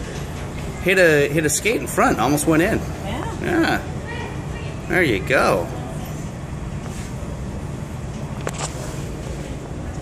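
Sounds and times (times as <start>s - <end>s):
indoor ice arena rumble: 0.0s - 10.0s.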